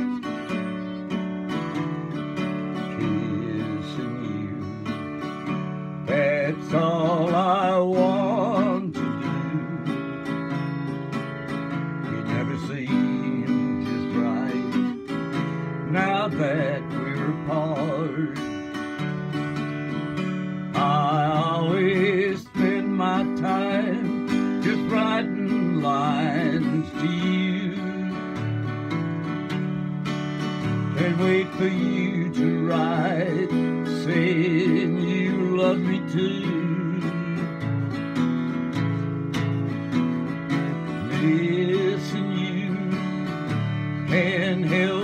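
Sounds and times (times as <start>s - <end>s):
strummed acoustic guitar: 0.0s - 45.0s
man singing country ballad: 1.5s - 29.3s, 30.6s - 39.6s, 40.5s - 45.0s.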